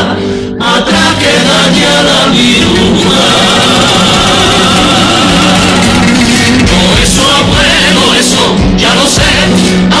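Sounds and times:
male chorus singing: 0:00.0 - 0:10.0.

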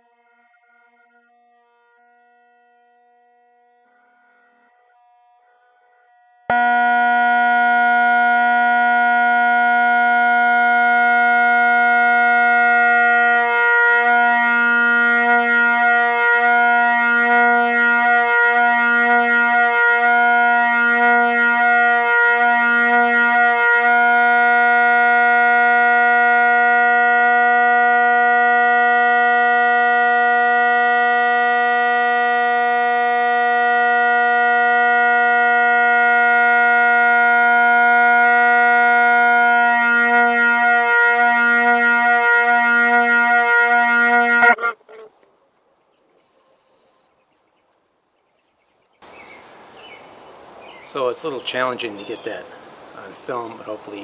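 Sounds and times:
bagpipe drones buzzing: 0:06.5 - 0:45.1, 0:50.9 - 0:54.0.

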